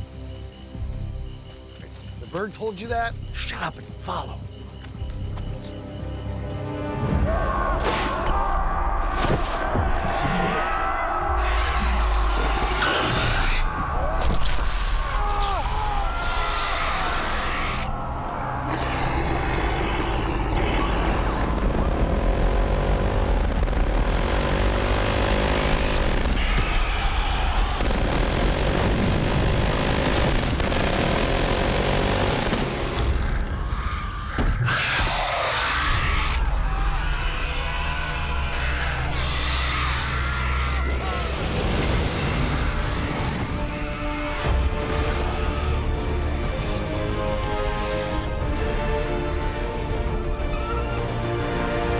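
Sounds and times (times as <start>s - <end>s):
dramatic action film music: 0.0s - 51.9s
deep rumble: 19.8s - 33.8s.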